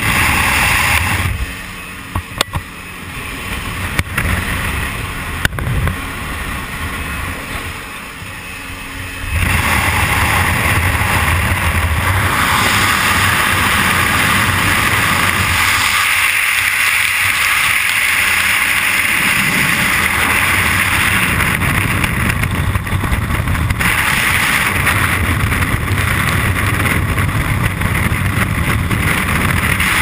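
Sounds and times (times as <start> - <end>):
aircraft engine: 0.0 - 30.0
wind rushing past: 2.7 - 30.0.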